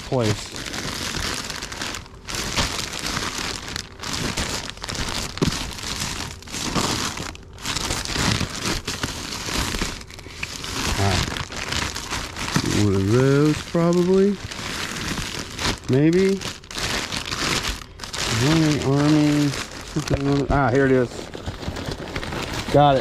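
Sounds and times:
plastic bags rustling and crinkling: 0:00.0 - 0:23.0.

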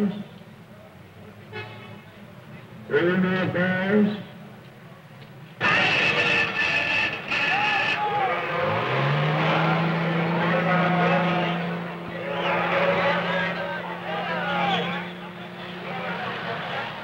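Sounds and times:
crowd shouting: 0:05.6 - 0:17.0
truck engine droning: 0:05.6 - 0:17.0.

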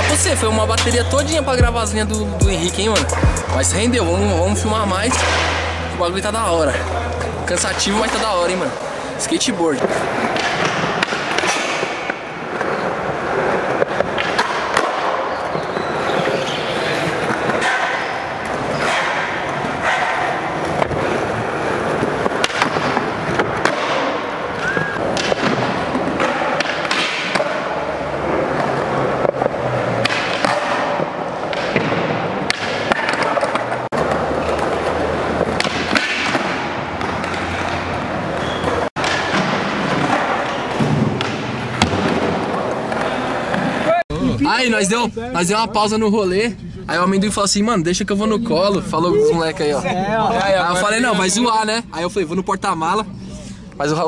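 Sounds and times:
skateboard wheels rolling on concrete: 0:09.7 - 0:44.0.

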